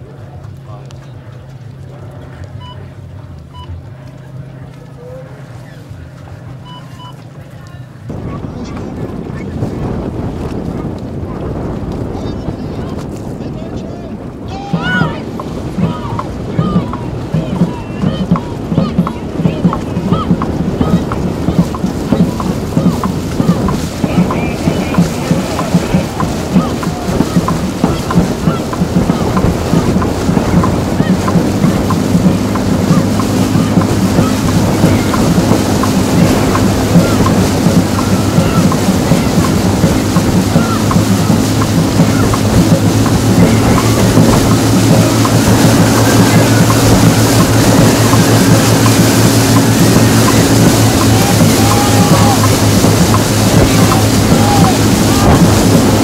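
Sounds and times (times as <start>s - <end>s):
paddle strokes in water: 0.0s - 56.0s
steady engine hum: 0.0s - 56.0s
wash of water: 0.0s - 56.0s
quick regular drumbeats: 14.6s - 56.0s.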